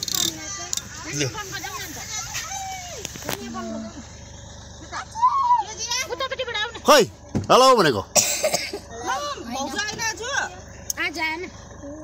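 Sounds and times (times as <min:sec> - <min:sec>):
children and women chattering: 0:00.0 - 0:12.0.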